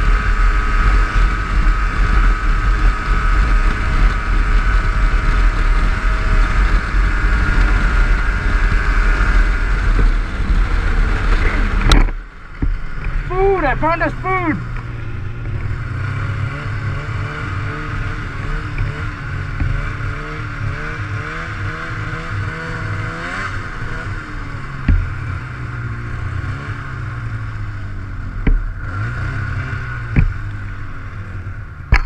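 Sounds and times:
snowmobile engine running: 0.0s - 32.0s.

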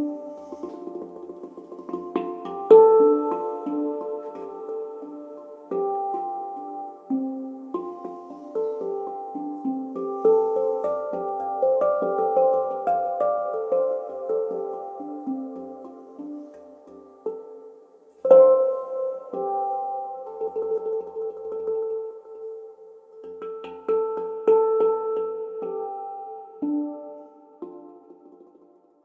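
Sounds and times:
handpan notes: 0.0s - 29.0s.

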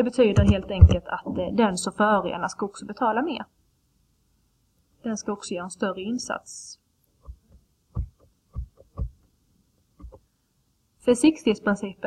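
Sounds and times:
soft low thumps: 0.3s - 1.1s, 7.2s - 9.2s.

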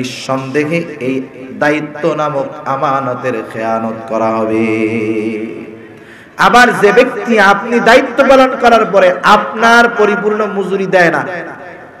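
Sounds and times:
man chanting through microphone: 0.0s - 5.8s, 6.4s - 11.8s.

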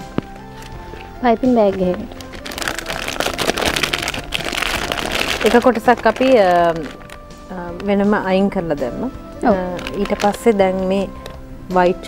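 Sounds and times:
plastic crinkling and rustling: 0.0s - 8.0s, 9.4s - 11.4s
soft background music: 0.0s - 12.0s.

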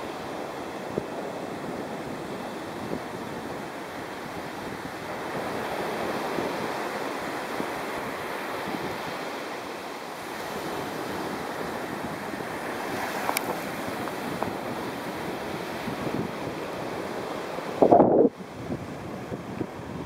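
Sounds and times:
surf on a beach: 0.0s - 20.0s
wind buffeting microphone: 0.0s - 20.0s.

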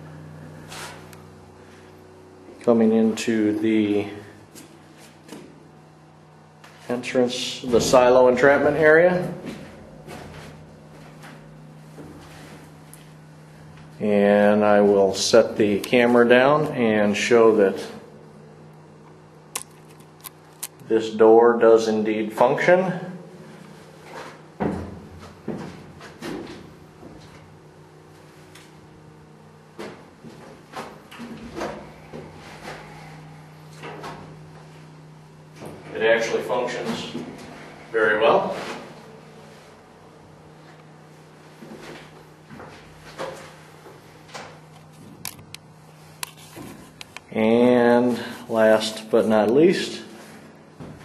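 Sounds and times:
generator humming: 0.0s - 51.0s.

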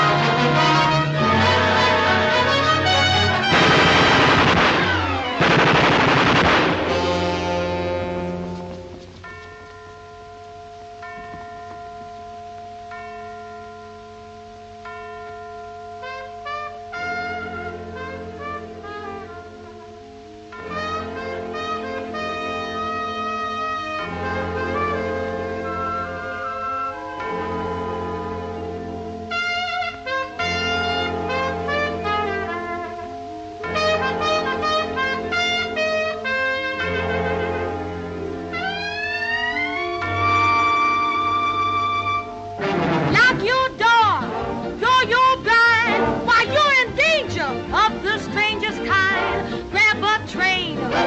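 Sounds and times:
jazz trumpet: 0.0s - 9.3s, 16.0s - 51.0s
held low chord: 0.0s - 51.0s
bell-like chime: 9.2s - 18.1s, 39.2s - 44.1s.

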